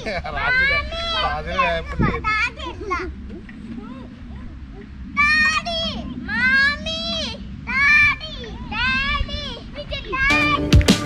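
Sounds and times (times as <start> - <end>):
children calling out in play: 0.3 - 10.8.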